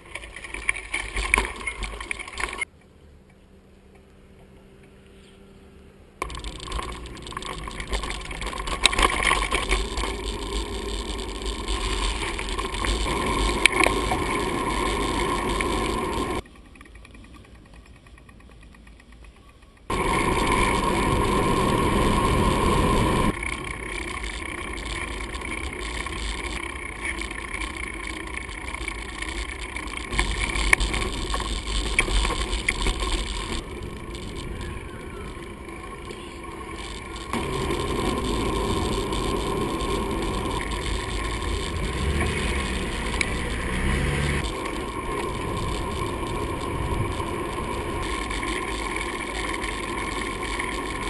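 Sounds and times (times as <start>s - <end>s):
bike rattling and knocking: 0.0s - 2.7s, 6.2s - 51.0s
bike tyre noise: 0.0s - 2.7s, 6.2s - 51.0s
wind rush: 19.9s - 23.4s.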